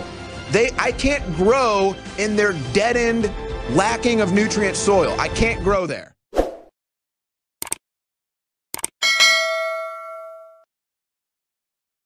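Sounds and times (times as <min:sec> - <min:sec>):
notification bell ding: 0:09.0 - 0:10.7.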